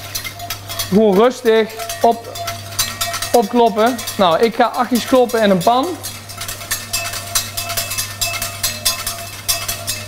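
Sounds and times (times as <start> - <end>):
whisk clicking against pan: 0.0 - 10.0.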